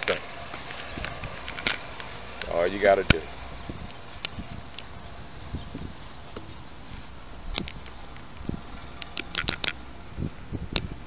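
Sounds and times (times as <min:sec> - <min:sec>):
sharp clicks and crackles: 0:00.0 - 0:03.2, 0:03.8 - 0:06.6, 0:07.4 - 0:09.8, 0:10.7 - 0:11.0
low steady background hiss: 0:00.0 - 0:11.0.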